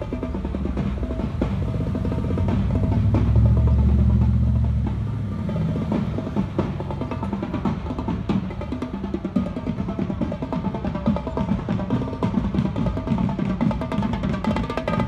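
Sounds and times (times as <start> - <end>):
truck driving past: 0.0 - 8.4
snare rolls over bass drum: 0.0 - 8.6.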